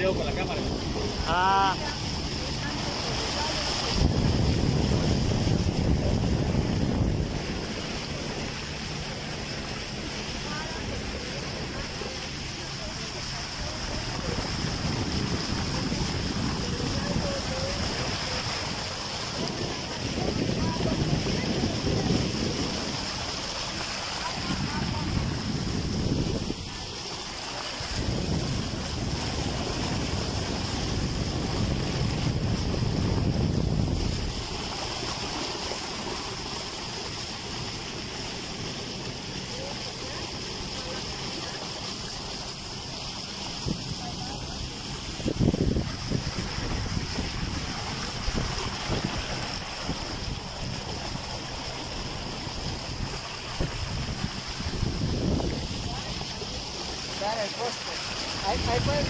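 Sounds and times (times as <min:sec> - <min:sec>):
water rushing past boat: 0:00.0 - 0:59.0
wind buffeting microphone: 0:00.0 - 0:59.0.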